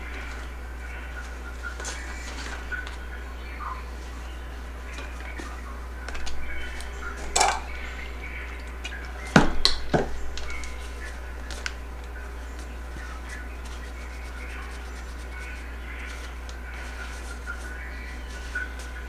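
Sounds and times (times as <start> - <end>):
low steady hum: 0.0 - 19.0
paper towel rustling: 0.0 - 19.0.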